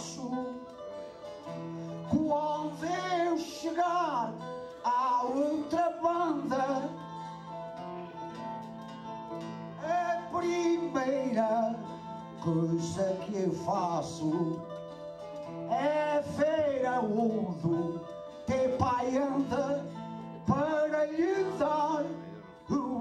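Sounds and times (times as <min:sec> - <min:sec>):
man singing into a microphone: 0:00.0 - 0:08.2, 0:09.7 - 0:14.8, 0:15.6 - 0:23.0
plucked guitar: 0:00.0 - 0:23.0.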